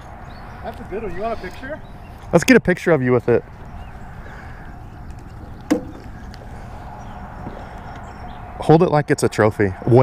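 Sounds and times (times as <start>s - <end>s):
outdoor background noise: 0.0s - 10.0s
sharp knock: 5.7s - 6.0s.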